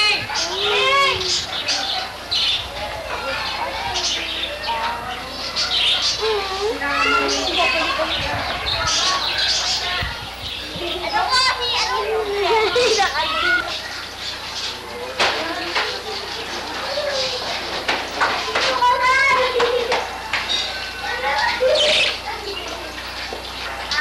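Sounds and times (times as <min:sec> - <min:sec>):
children talking and calling out: 0:00.0 - 0:24.0.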